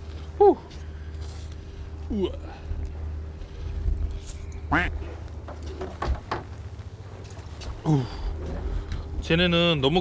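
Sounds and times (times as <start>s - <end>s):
boat engine humming: 0.0s - 10.0s.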